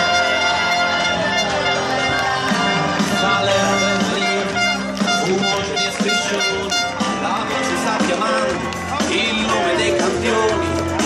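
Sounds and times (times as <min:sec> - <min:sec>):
loud music over loudspeakers: 0:00.0 - 0:11.0.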